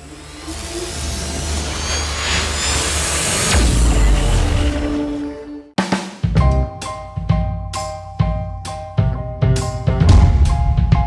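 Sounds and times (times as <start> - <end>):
deep boom: 10.0 - 11.0.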